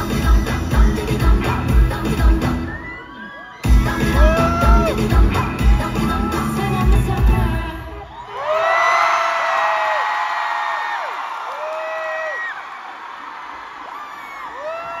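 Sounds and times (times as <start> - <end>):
live pop song with heavy bass: 0.0 - 8.1
high-pitched screams: 2.6 - 5.1
crowd cheering: 2.6 - 15.0.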